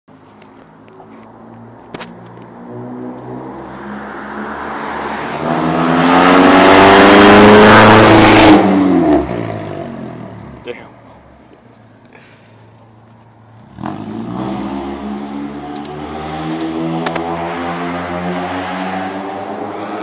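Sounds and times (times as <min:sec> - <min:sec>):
car engine accelerating past: 0:02.5 - 0:10.4, 0:13.6 - 0:20.0.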